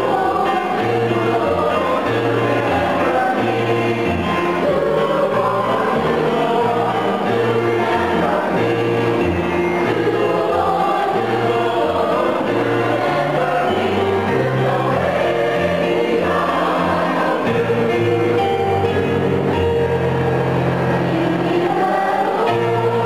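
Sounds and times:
mixed choir singing: 0:00.0 - 0:23.0.

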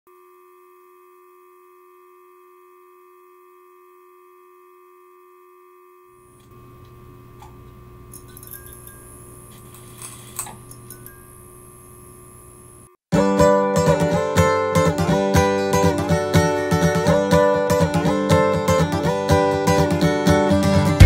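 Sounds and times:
ringing drone of pure tones: 0:08.1 - 0:12.9.

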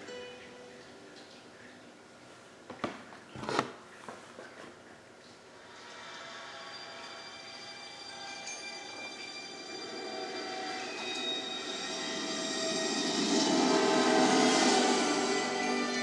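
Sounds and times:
train rumble: 0:09.0 - 0:16.0.

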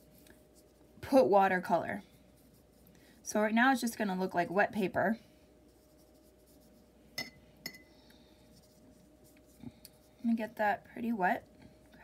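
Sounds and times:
paintbrush clinking against cup: 0:07.2 - 0:07.9.

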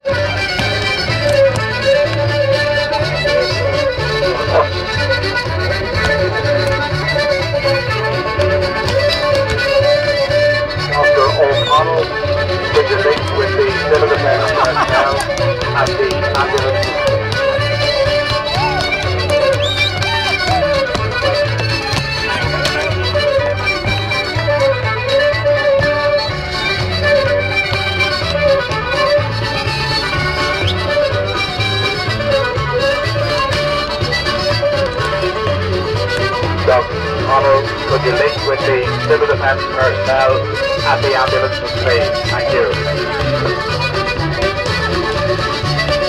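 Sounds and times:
fiddle dance music: 0:00.0 - 0:46.0
shoes tapping on wooden board: 0:00.4 - 0:02.4, 0:05.4 - 0:10.3, 0:12.9 - 0:13.5, 0:14.5 - 0:24.8, 0:31.6 - 0:37.1, 0:40.6 - 0:46.0.

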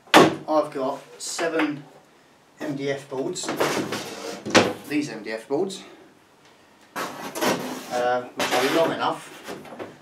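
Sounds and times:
person speaking: 0:02.6 - 0:06.0, 0:07.8 - 0:09.4
board scraping against wall: 0:03.4 - 0:04.9, 0:07.0 - 0:09.9.

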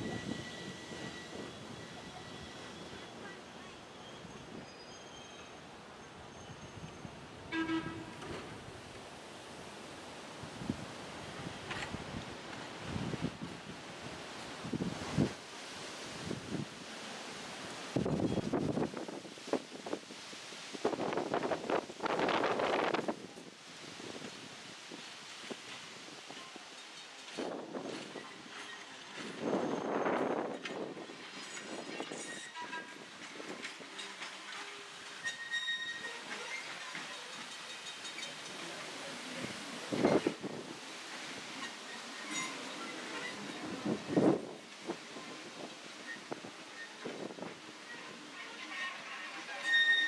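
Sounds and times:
high-pitched wheel squeals: 0:00.0 - 0:03.2, 0:35.2 - 0:36.7, 0:41.6 - 0:44.3, 0:47.9 - 0:50.0
train wheels rumbling on rails: 0:00.0 - 0:05.6, 0:10.5 - 0:20.1, 0:20.8 - 0:50.0.

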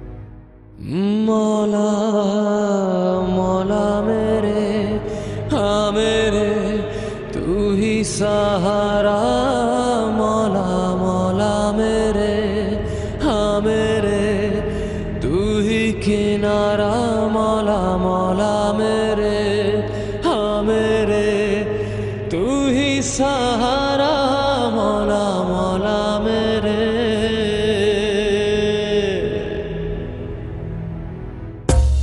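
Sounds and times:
low drone: 0:00.0 - 0:32.0.

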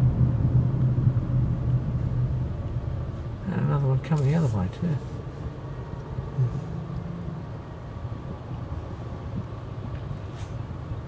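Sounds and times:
car engine hum: 0:00.0 - 0:11.0
road noise: 0:00.0 - 0:11.0.

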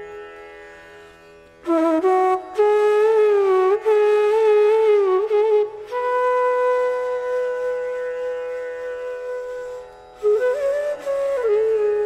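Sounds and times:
bamboo flute long note: 0:01.7 - 0:12.0.

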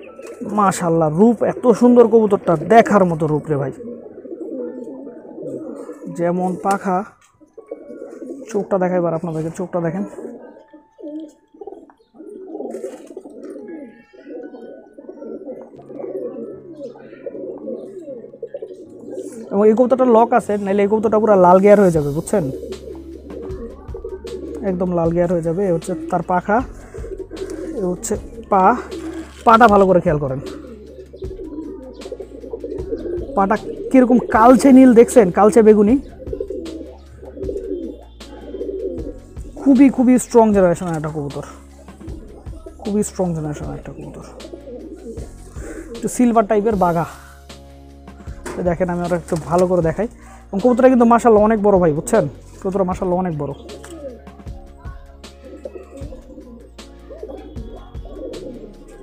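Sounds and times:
pigeons cooing: 0:00.0 - 0:59.0
man speaking: 0:00.4 - 0:03.8, 0:08.5 - 0:10.3, 0:19.4 - 0:22.8, 0:24.6 - 0:26.7, 0:27.6 - 0:30.7, 0:33.3 - 0:36.0, 0:39.6 - 0:41.6, 0:42.7 - 0:44.5, 0:45.7 - 0:47.2, 0:48.5 - 0:53.8.

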